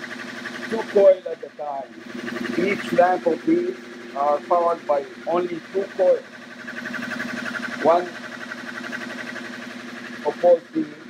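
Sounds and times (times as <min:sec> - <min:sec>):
electric motor humming: 0:00.0 - 0:11.0.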